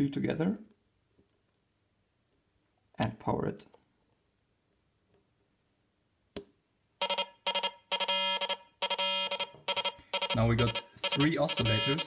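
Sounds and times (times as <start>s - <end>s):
buzzy electronic synthesizer tone: 7.1s - 12.0s.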